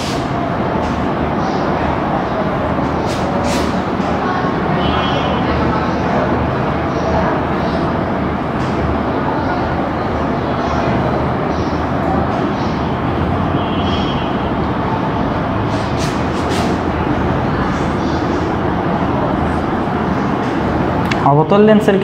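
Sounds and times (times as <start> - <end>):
marker squeaking on whiteboard: 3.0 - 3.8, 15.7 - 16.9.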